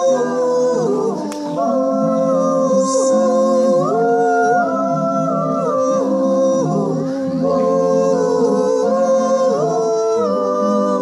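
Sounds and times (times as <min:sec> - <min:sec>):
low accompanying tones: 0:00.0 - 0:11.0
person singing into microphone: 0:00.0 - 0:11.0.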